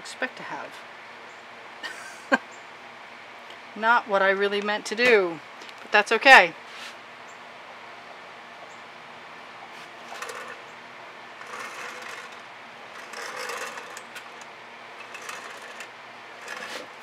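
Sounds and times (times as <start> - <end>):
wooden board scraping on a tabletop: 11.4 - 12.4, 13.0 - 14.3, 15.0 - 17.0.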